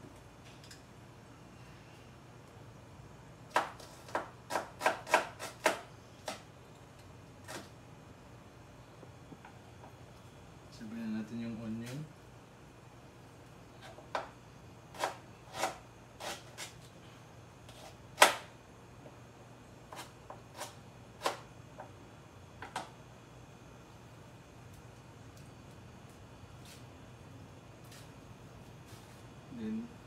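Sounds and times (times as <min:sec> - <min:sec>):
faint steady hum: 0:00.0 - 0:30.0.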